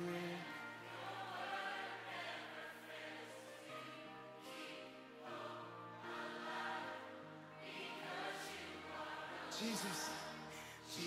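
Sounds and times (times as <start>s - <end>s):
voices singing: 0.0s - 11.0s.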